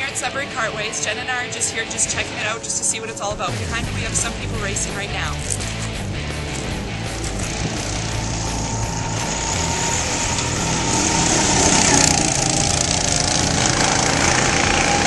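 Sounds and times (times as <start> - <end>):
go-kart engines racing: 6.5 - 15.0.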